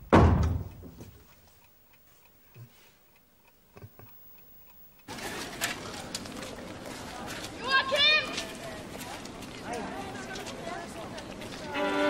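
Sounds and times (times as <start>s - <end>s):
loud bump: 0.0s - 1.0s
outdoor background noise: 0.0s - 12.0s
clock ticking faintly: 0.4s - 5.1s.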